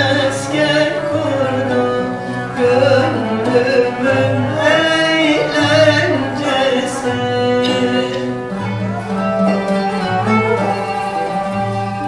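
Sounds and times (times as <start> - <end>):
woman singing folk song: 0.0 - 9.2
instrumental accompaniment: 0.0 - 12.0.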